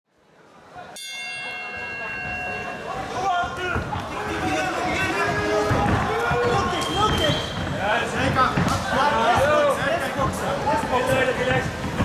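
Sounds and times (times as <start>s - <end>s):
crowd voices: 0.1s - 12.0s
boxing ring bell: 1.0s - 3.0s.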